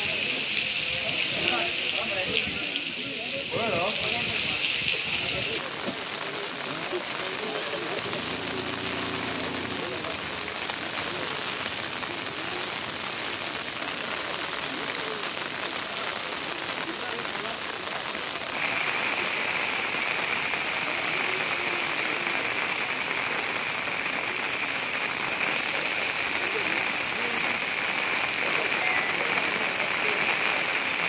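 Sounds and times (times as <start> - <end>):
faint voices: 0.0 - 31.0
rain hiss: 0.0 - 31.0.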